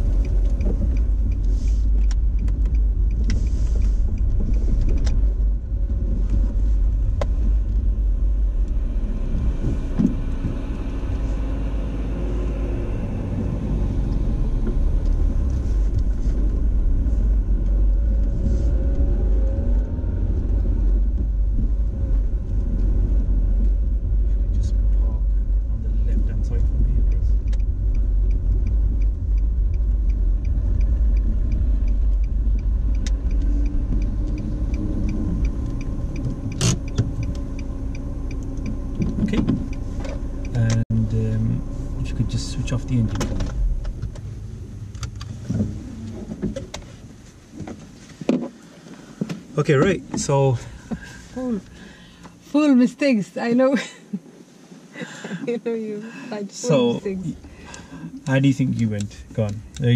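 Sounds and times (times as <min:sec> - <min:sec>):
car engine rumble: 0:00.0 - 0:59.9
tyres on road: 0:00.0 - 0:59.9.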